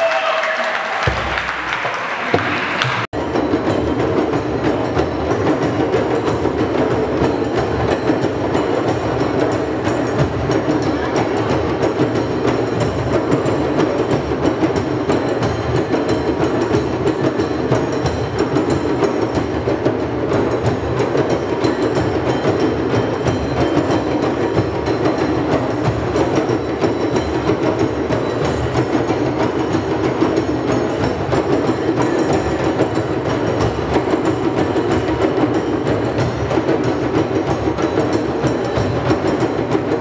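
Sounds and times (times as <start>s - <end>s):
many hand drums playing: 0.0s - 40.0s.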